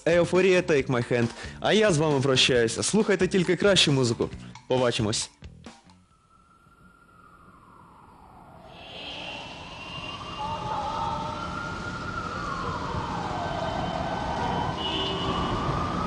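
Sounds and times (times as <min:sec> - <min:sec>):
siren wailing: 0:06.0 - 0:16.0.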